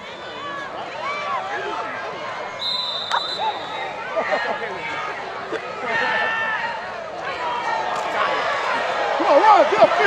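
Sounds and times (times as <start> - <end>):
referee's whistle: 2.6 - 4.0.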